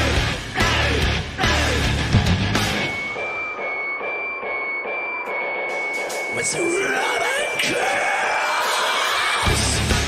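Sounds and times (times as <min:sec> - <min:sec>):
metal band playing: 0:00.0 - 0:03.2
heavy drums: 0:00.0 - 0:03.5, 0:08.5 - 0:10.0.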